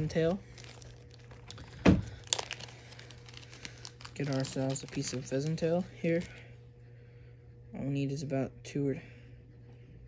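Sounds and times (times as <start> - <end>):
faint crinkling: 0.0 - 6.6
steady low hum: 0.0 - 10.0.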